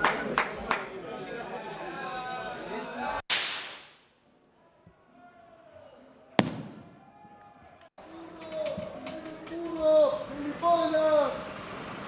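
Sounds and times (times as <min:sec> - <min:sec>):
firework rocket bang: 0:06.4 - 0:07.0.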